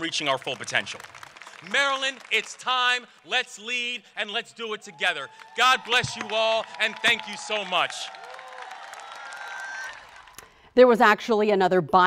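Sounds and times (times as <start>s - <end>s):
crowd cheering: 0.0s - 10.6s
crowd clapping: 0.0s - 10.6s.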